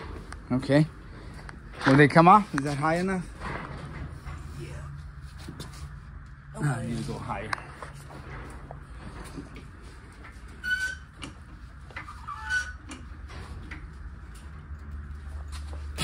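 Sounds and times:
steady low hum: 0:00.0 - 0:16.0
short squeaks: 0:10.5 - 0:11.4, 0:12.0 - 0:13.0.

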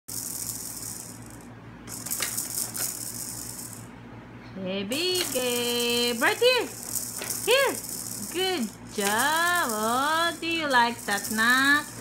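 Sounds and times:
plastic cup rattle shaken: 0:00.1 - 0:03.9, 0:05.1 - 0:12.0.

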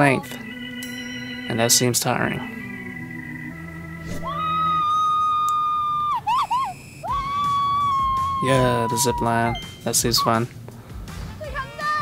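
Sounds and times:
woman screaming: 0:04.2 - 0:09.5.

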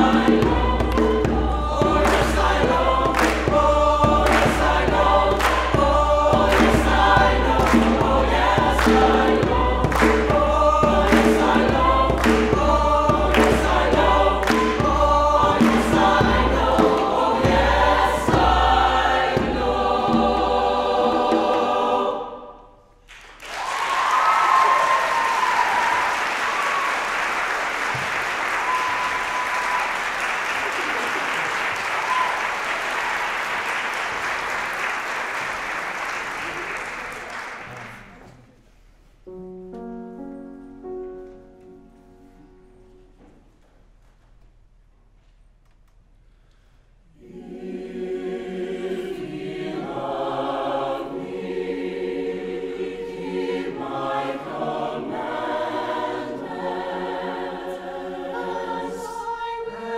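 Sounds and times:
hand drum beat: 0:00.0 - 0:21.7
mixed choir singing: 0:00.0 - 0:22.8, 0:23.6 - 0:37.8, 0:47.1 - 0:59.9
hand claps: 0:03.1 - 0:03.6, 0:04.2 - 0:05.8, 0:06.5 - 0:07.0, 0:07.6 - 0:08.1, 0:09.9 - 0:10.4, 0:11.1 - 0:12.6, 0:13.3 - 0:13.8, 0:14.4 - 0:14.9, 0:23.1 - 0:38.3
audience applause: 0:23.1 - 0:38.4
audience cheering: 0:23.4 - 0:38.2.

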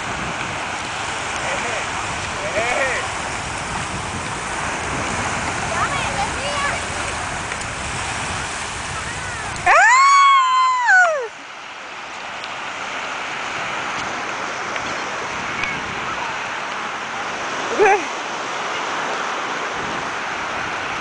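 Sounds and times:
small waves washing ashore: 0:00.0 - 0:21.0.

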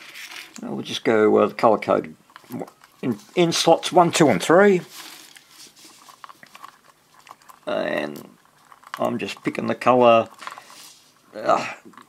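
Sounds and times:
wires rustling: 0:00.0 - 0:12.0.

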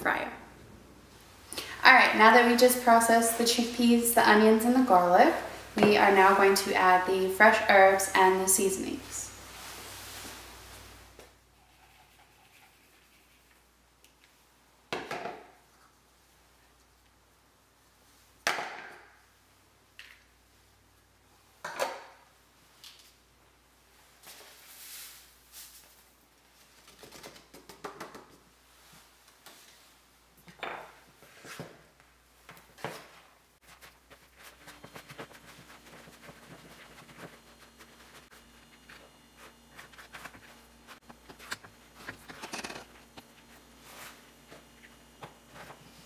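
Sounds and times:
spoon stirring wet mixture: 0:33.6 - 0:43.6.

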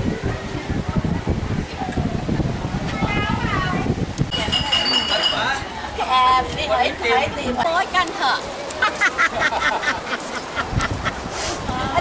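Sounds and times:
people talking: 0:00.0 - 0:10.1, 0:11.6 - 0:12.0
tableware clinking: 0:04.3 - 0:05.6.

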